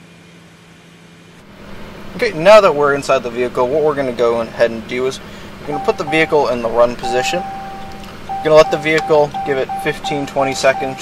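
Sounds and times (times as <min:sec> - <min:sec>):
steady low hum: 0:01.4 - 0:11.0.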